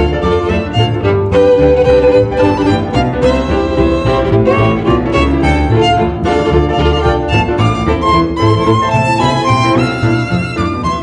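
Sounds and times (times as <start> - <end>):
violin playing a melody: 0.0 - 11.0.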